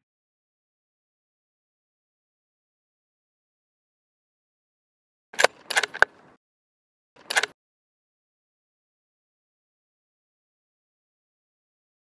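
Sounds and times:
bolt-action rifle clacks: 5.4s - 6.2s, 7.2s - 7.5s.

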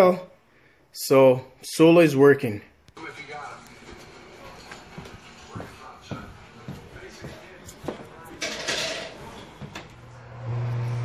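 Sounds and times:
footsteps: 2.9s - 10.2s.

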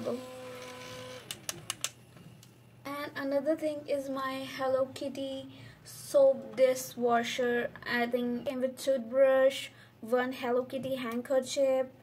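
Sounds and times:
handheld fan motor whining: 0.0s - 1.9s.

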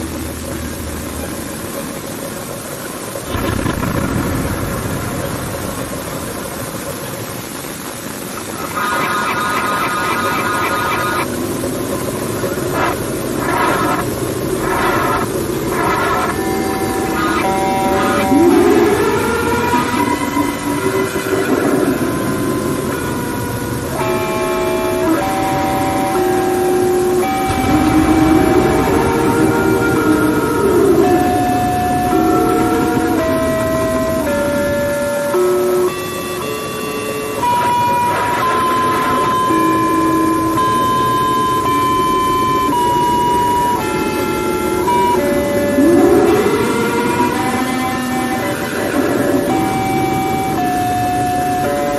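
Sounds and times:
held horn-like tones: 8.6s - 51.9s
swooping rise-and-fall sound: 27.5s - 34.3s.

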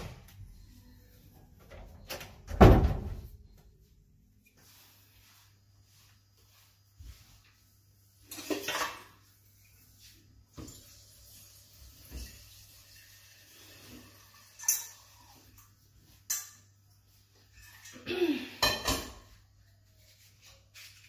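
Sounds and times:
metal pot and utensils clanking: 8.3s - 9.2s, 13.8s - 16.7s, 18.6s - 19.3s.

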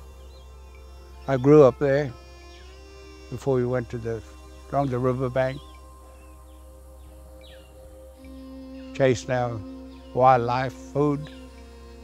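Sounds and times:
soft music of held notes: 0.0s - 12.0s
bird chirps: 4.2s - 12.0s.

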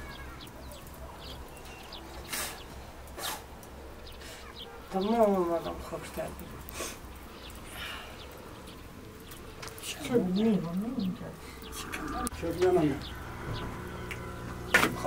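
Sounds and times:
short hissing or rustling: 2.2s - 4.6s, 6.7s - 7.1s.

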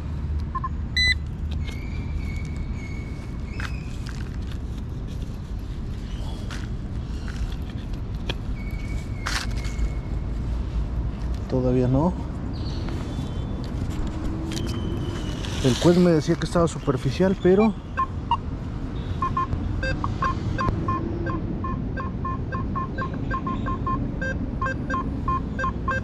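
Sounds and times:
digging tool scraping soil: 15.3s - 16.4s.

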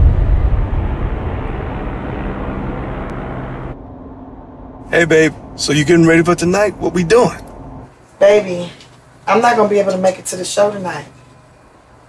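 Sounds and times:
loud low rumble: 0.0s - 7.9s
steady low hum: 0.0s - 12.0s.

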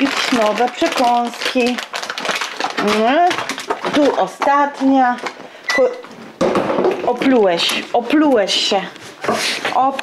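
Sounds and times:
woman's voice: 0.0s - 1.8s, 2.8s - 6.0s, 7.0s - 9.0s, 9.6s - 10.0s.

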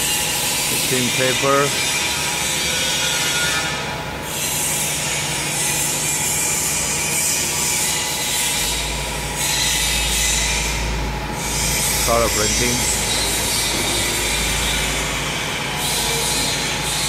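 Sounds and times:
paper folding machines running: 0.0s - 6.0s, 11.4s - 17.0s.

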